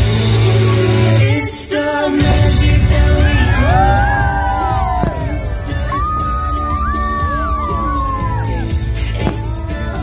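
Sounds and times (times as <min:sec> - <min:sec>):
music over loudspeakers: 0:00.0 - 0:10.0
low rumble of firework launches: 0:02.6 - 0:06.3
sharp firework bang: 0:04.8 - 0:05.8.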